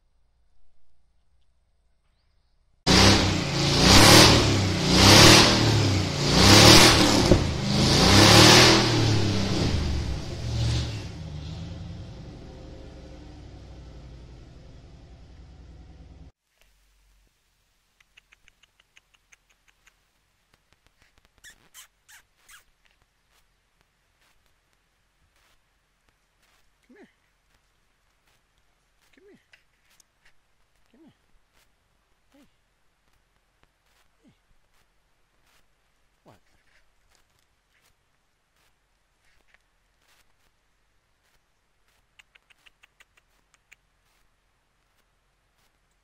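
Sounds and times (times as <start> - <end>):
tire screeching: 2.9 - 16.3
truck engine revving: 2.9 - 16.3
faint soft rustles: 16.4 - 46.0.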